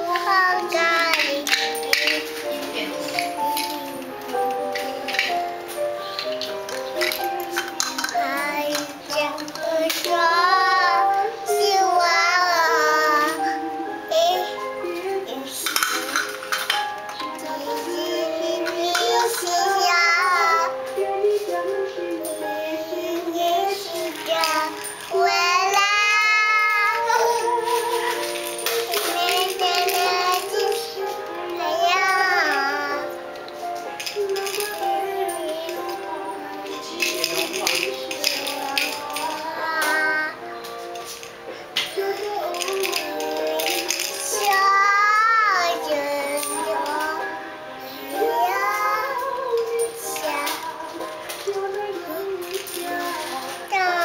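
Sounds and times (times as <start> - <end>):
girl singing: 0.0 - 54.0
instrumental backing music: 0.0 - 54.0.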